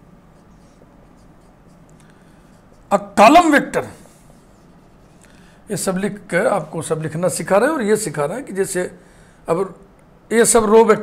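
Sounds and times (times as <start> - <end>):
marker pen on whiteboard: 0.0 - 7.4.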